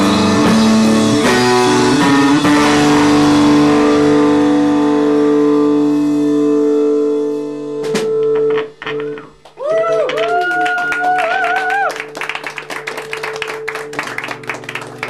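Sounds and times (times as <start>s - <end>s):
live rock band playing: 0.0s - 9.3s, 12.0s - 15.0s.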